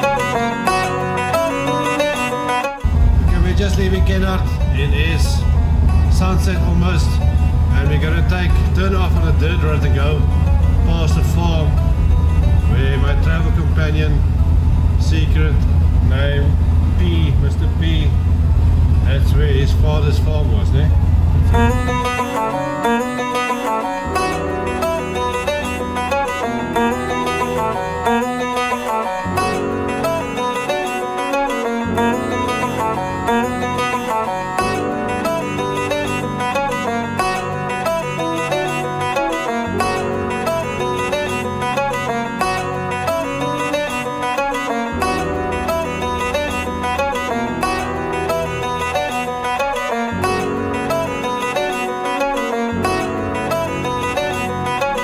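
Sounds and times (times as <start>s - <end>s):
bluegrass banjo and guitar music: 0.0s - 55.0s.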